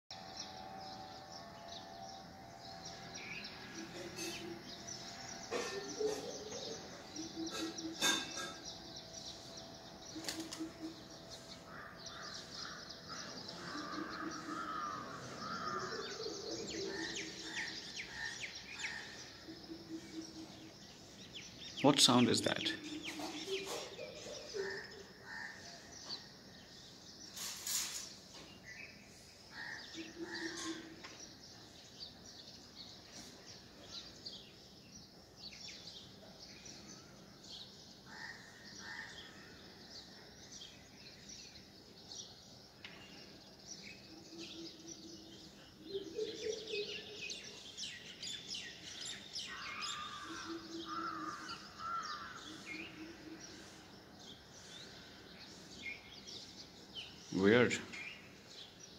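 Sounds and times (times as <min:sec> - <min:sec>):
small birds chirping: 0:00.2 - 0:58.9
crows cawing: 0:10.2 - 0:20.6, 0:24.5 - 0:25.9, 0:29.5 - 0:31.2, 0:38.1 - 0:39.6, 0:49.4 - 0:53.8.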